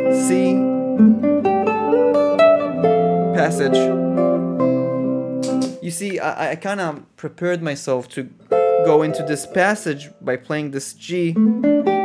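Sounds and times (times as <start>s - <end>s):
electric guitar single-note line: 0.0s - 5.8s, 8.5s - 10.3s, 11.3s - 12.0s.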